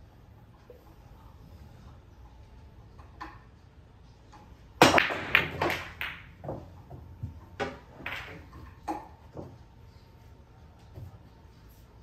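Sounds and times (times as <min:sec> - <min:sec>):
pool balls clattering: 0:04.3 - 0:09.7
cue ball cracking into rack: 0:04.8 - 0:09.6.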